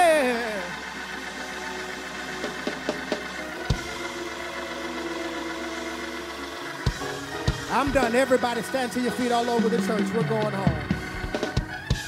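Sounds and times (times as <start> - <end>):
church keyboard sustained chords: 0.0 - 12.0.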